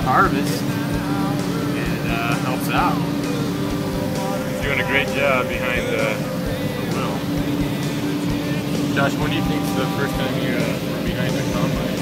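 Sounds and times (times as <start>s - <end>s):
combine harvester drone: 0.0s - 12.0s.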